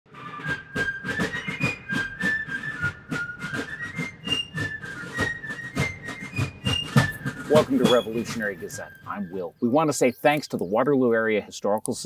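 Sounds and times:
fife playing melody: 0.1 - 10.5
drum beat: 0.3 - 9.4.

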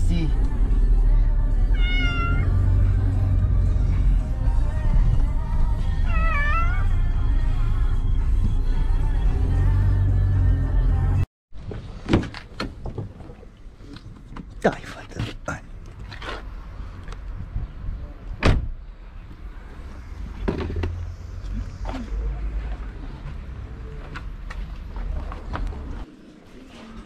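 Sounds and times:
cat meowing: 1.7 - 2.6, 6.0 - 6.9
steady low rumble: 2.5 - 9.4
car door thump: 18.4 - 18.7.

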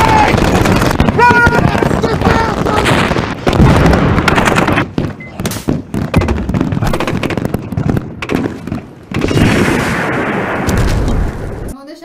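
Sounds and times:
rapid gunfire: 0.0 - 11.4.

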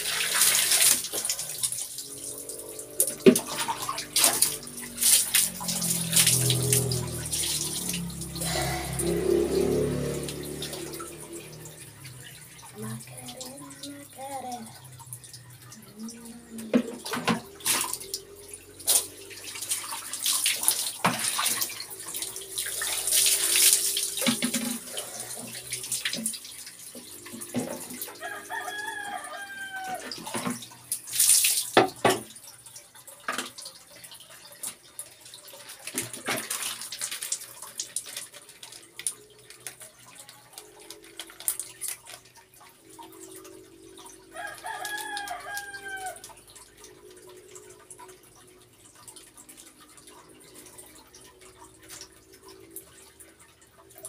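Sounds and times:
water dripping: 0.0 - 54.0
water splashing onto concrete floor: 0.0 - 54.0
rooster crowing: 28.1 - 30.3, 44.3 - 46.4.

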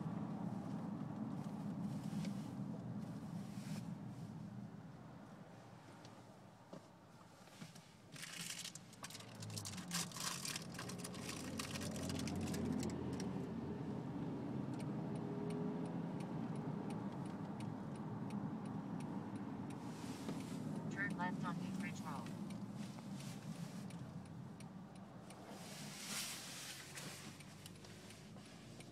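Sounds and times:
car engine and road noise: 0.0 - 28.9
light ticking: 14.7 - 25.8, 26.8 - 28.9.

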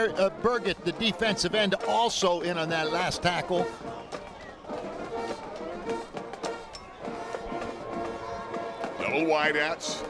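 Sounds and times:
held brass notes: 0.0 - 10.0.

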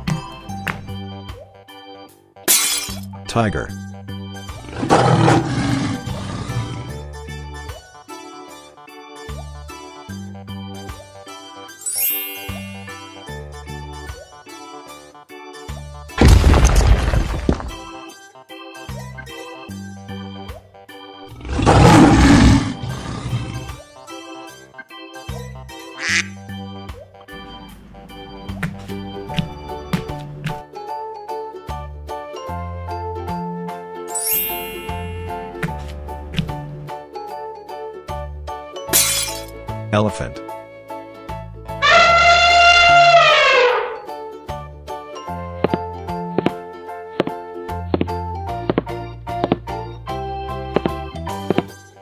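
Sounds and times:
light background music: 0.0 - 16.4, 17.7 - 52.0
cartoon shattering crash: 16.2 - 17.6, 38.9 - 39.5
duck quack: 26.0 - 26.4.

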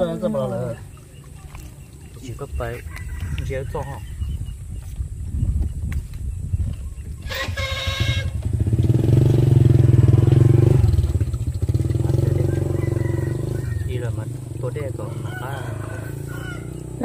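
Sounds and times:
voices: 0.0 - 4.4, 11.9 - 17.0
small engine running: 7.2 - 14.1.

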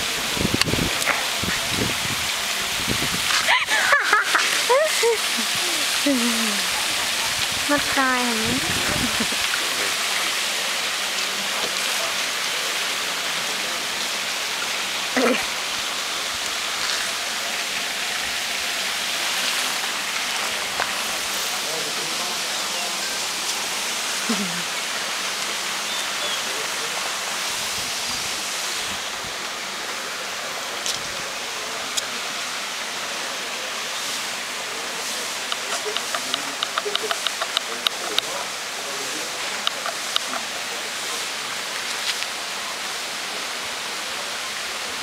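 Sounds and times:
steady outdoor hiss: 0.0 - 45.0.

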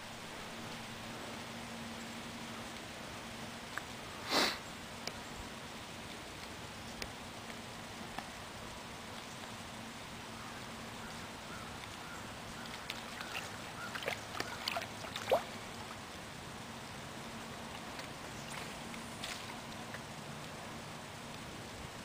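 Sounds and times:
faint steady hiss: 0.0 - 22.0.

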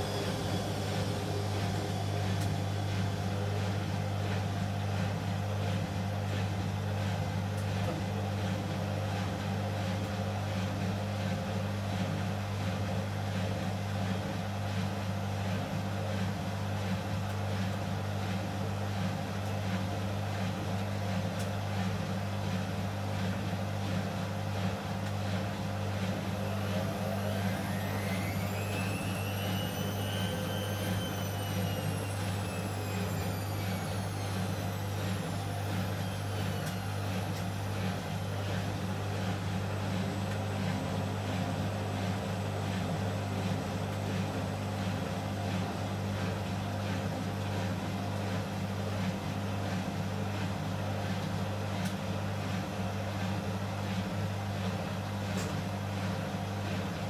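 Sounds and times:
motor whine rising in pitch: 0.0 - 4.0, 25.9 - 44.4
washing machines spinning: 0.0 - 57.0.

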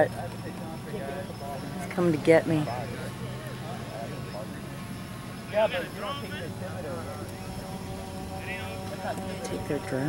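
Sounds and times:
faint constant hum: 0.0 - 10.0.

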